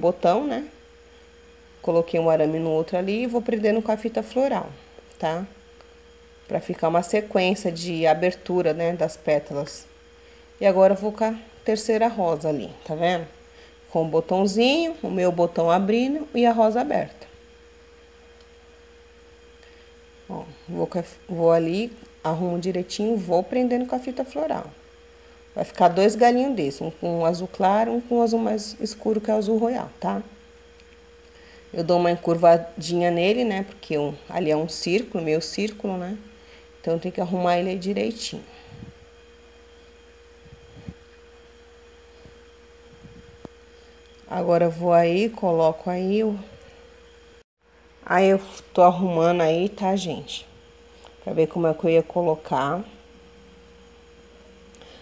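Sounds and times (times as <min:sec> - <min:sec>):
low buzz: 0:00.0 - 0:55.0
pure tone hum: 0:00.0 - 0:55.0.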